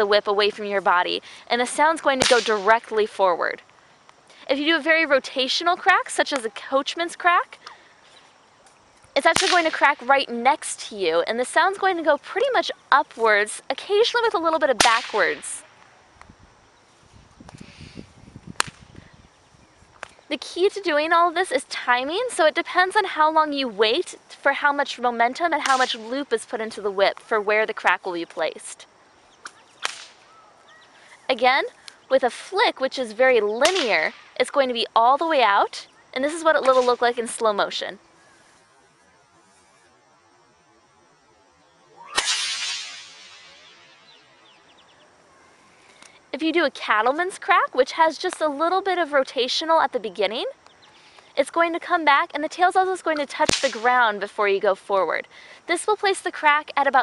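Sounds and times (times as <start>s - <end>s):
whip crack: 2.2s - 2.9s, 9.3s - 10.1s, 14.8s - 15.7s, 18.6s - 18.9s, 25.6s - 26.1s, 29.4s - 30.3s, 33.6s - 34.4s, 36.6s - 37.2s, 42.0s - 44.0s, 53.4s - 54.0s
whip swinging rustle: 2.2s - 2.9s, 8.6s - 10.0s, 14.8s - 15.9s, 18.5s - 18.9s, 25.6s - 26.2s, 29.4s - 30.3s, 36.5s - 37.4s, 42.0s - 44.0s, 53.4s - 53.9s.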